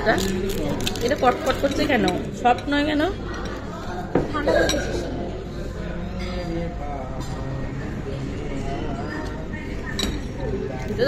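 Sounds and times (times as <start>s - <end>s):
murmur of restaurant room: 0.0s - 11.0s.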